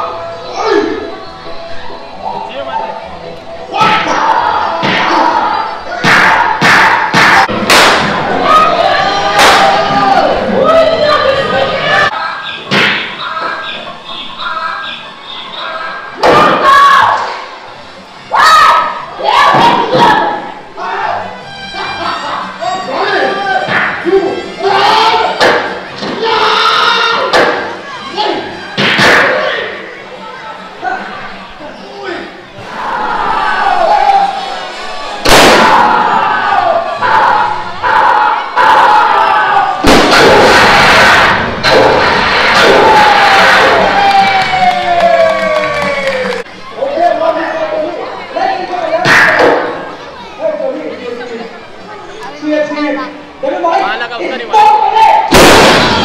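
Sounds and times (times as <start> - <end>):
actors yelling loudly: 0.0 - 1.2, 1.8 - 17.6, 18.2 - 56.0
people shouting: 0.0 - 17.6, 18.3 - 50.7
crowd noise: 0.0 - 56.0
amplified dialogue: 9.8 - 17.6, 46.6 - 56.0
blank gunshots: 55.3 - 56.0.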